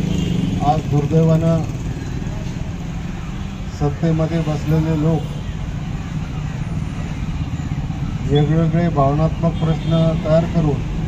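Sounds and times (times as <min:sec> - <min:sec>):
street background rumble: 0:00.0 - 0:11.0.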